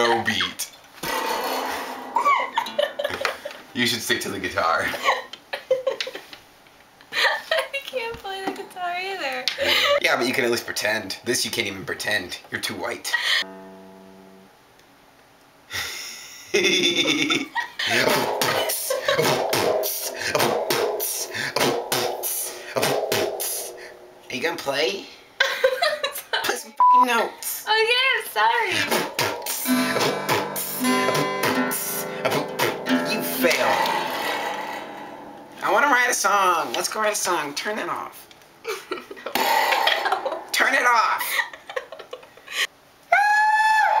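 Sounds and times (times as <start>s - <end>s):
high-pitched held tone: 13.4s - 14.5s, 29.4s - 35.7s
man beatboxing: 17.9s - 23.7s, 28.8s - 33.9s.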